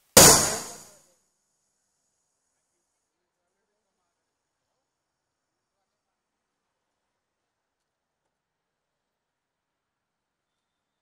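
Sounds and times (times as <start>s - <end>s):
loud impact hit with ring: 0.1s - 0.9s.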